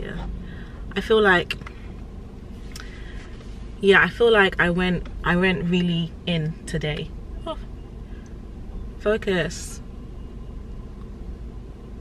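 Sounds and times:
low rumble in car cabin: 0:00.0 - 0:12.0.

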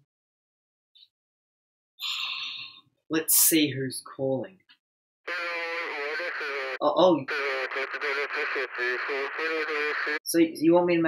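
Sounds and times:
voice through a phone: 0:05.3 - 0:10.5.

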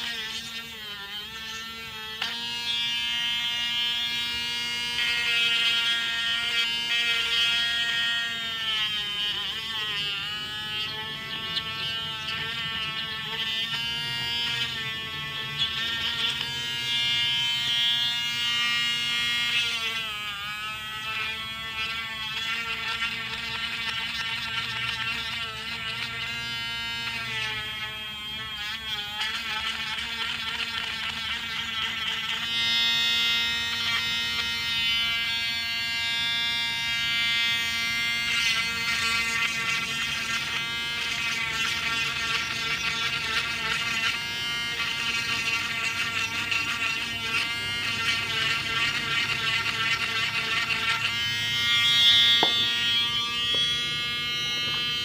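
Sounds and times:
rotary tool drilling plastic: 0:00.0 - 0:55.0.

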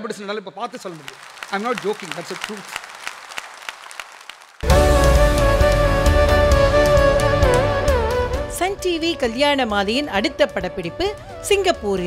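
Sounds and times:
audience applauding: 0:00.6 - 0:04.8.

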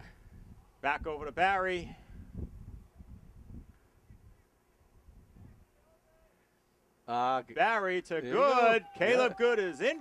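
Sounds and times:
wind on microphone: 0:00.0 - 0:05.7.

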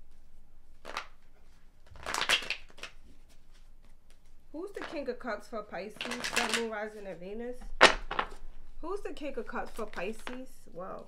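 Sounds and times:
cards shuffled by hand: 0:00.8 - 0:01.2, 0:01.8 - 0:05.0, 0:05.9 - 0:07.1, 0:09.6 - 0:10.5.

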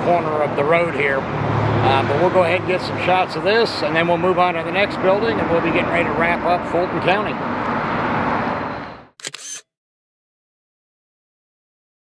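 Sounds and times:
camera shutter clicks: 0:09.2 - 0:09.6.

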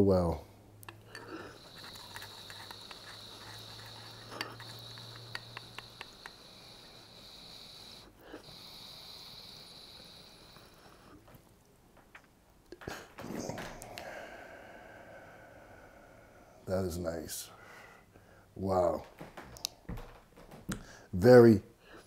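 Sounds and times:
tool clicking on glass: 0:00.9 - 0:06.4.

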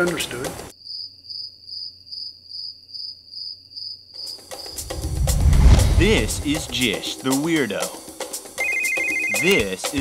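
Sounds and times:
cricket chirping: 0:00.7 - 0:04.9.

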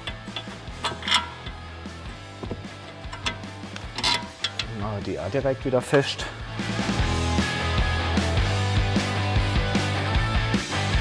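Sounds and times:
clicks and knocks of metal parts: 0:00.0 - 0:01.7, 0:02.4 - 0:04.8
background music: 0:00.0 - 0:11.0.

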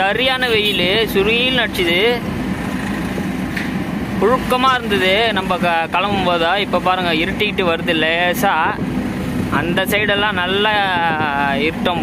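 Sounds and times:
truck engine humming: 0:00.0 - 0:12.0.

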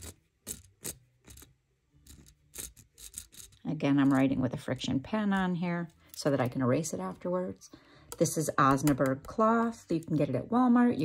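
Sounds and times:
pen scratching on cloth: 0:00.0 - 0:03.6.

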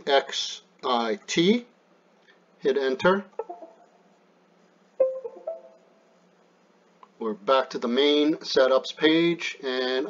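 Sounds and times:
computer two-note chime: 0:05.0 - 0:06.0.

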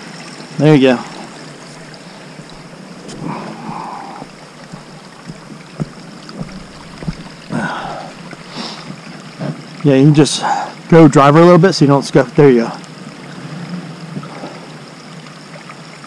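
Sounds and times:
footsteps on loose rock: 0:01.7 - 0:09.6
stones knocking together: 0:02.4 - 0:09.6.

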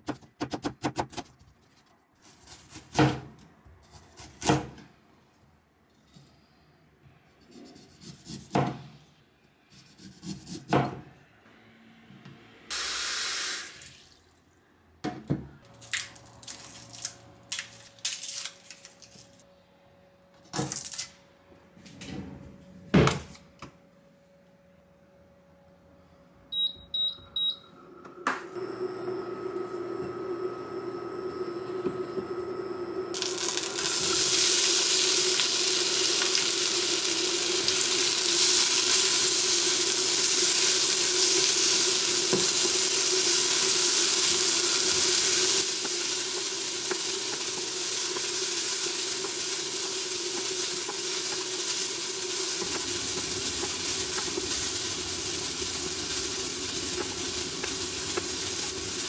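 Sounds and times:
cooktop hum: 0:00.0 - 0:11.4, 0:12.2 - 0:59.0
cooktop beeps: 0:26.5 - 0:58.9
onions sizzling in oil: 0:33.1 - 0:59.0.

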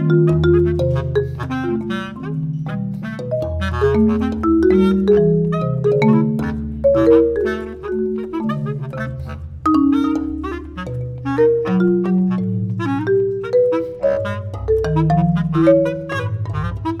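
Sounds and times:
low bass clarinet notes: 0:00.0 - 0:17.0
quick marimba notes: 0:00.0 - 0:17.0.

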